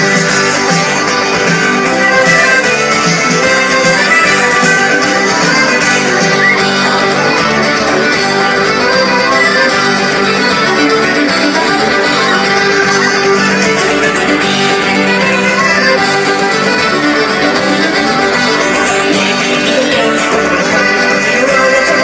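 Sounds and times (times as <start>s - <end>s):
live band with guitars: 0.0s - 22.0s.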